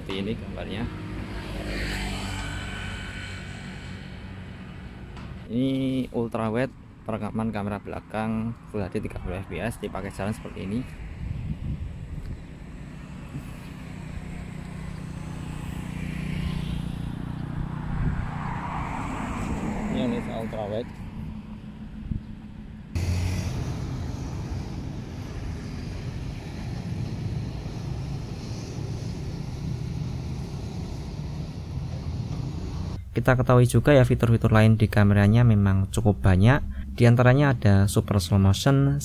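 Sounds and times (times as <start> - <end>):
busy street with motorbikes: 0.0 - 33.2
vehicles going by: 0.0 - 39.0.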